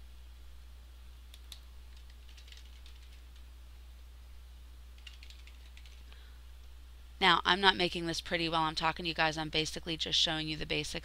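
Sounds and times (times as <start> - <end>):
low steady hum: 0.0 - 11.0
faint typing on a keyboard: 1.3 - 3.5, 5.0 - 6.3.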